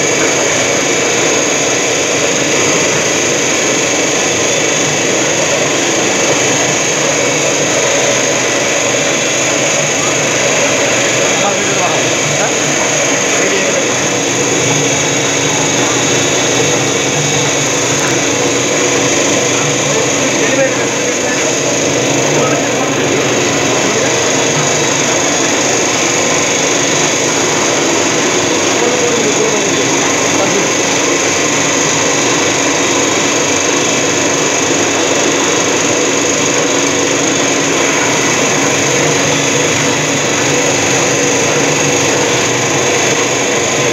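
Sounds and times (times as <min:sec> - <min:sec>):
machine rushing with faint whine: 0:00.0 - 0:43.9.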